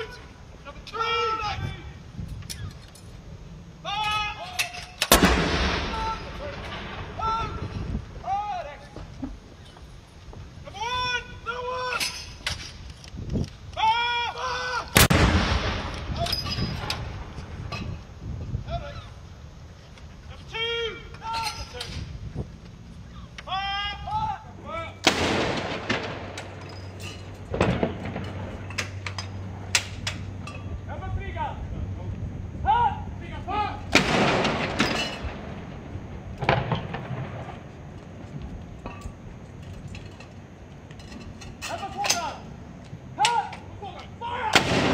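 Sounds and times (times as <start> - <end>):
gun firing blank round: 5.1 - 6.0, 25.0 - 26.4, 33.9 - 34.9, 44.6 - 44.9
field gun boom with echo: 5.1 - 7.7, 15.0 - 16.2, 25.0 - 26.4, 33.9 - 37.7, 44.5 - 44.9
long rumbling echo: 5.1 - 8.2, 15.0 - 16.2, 27.4 - 39.5.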